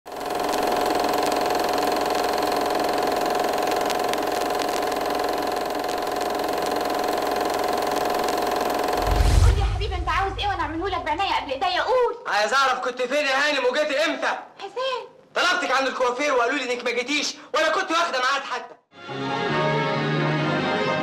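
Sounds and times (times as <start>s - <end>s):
film projector whirring: 0.1s - 9.1s
projector clicks: 0.2s - 9.0s
deep low boom: 9.0s - 11.1s.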